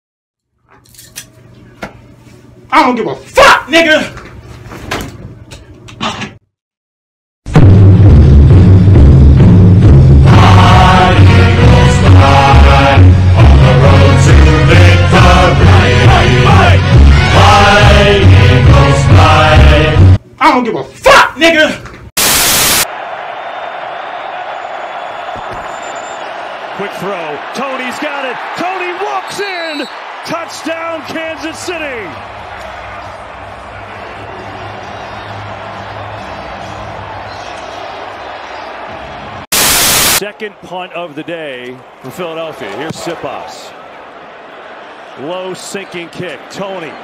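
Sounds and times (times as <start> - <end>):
tv static burst: 22.2 - 22.9, 39.5 - 40.2
stadium crowd hubbub: 22.9 - 39.4, 40.2 - 47.0.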